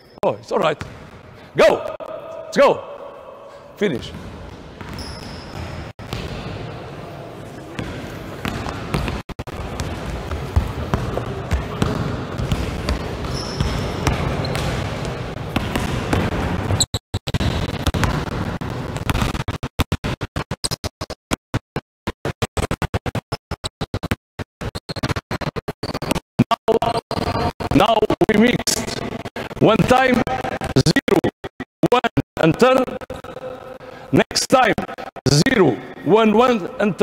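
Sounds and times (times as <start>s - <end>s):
basketballs bouncing on hall floor: 0.6s - 20.8s.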